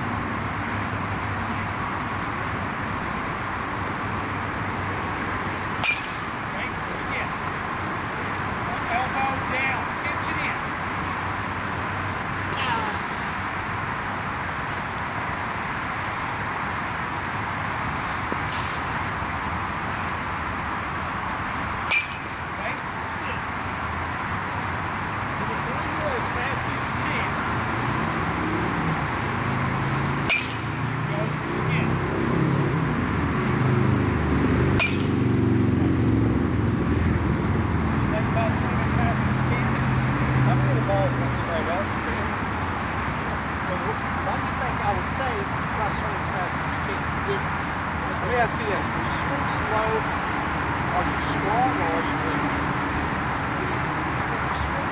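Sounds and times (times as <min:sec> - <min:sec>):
steady background noise: 0:00.0 - 0:54.9
baseball bat cracking balls: 0:05.2 - 0:07.2, 0:12.5 - 0:13.9, 0:21.0 - 0:23.1, 0:30.0 - 0:31.1, 0:34.6 - 0:36.0.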